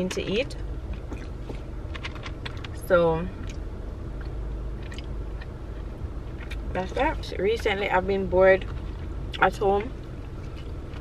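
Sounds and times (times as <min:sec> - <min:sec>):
low rumble in car cabin: 0:00.0 - 0:11.0.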